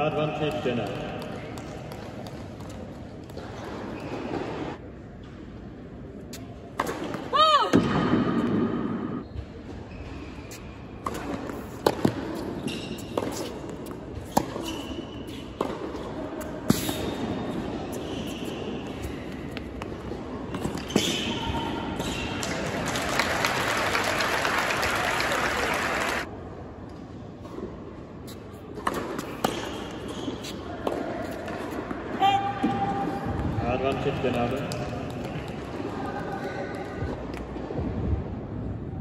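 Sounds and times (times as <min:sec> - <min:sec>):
shoe squeaks: 0:03.4 - 0:04.8, 0:09.2 - 0:10.8, 0:12.4 - 0:13.6, 0:14.2 - 0:15.6, 0:16.7 - 0:19.7, 0:20.6 - 0:22.3, 0:29.2 - 0:31.4
crowd applauding: 0:22.5 - 0:26.3.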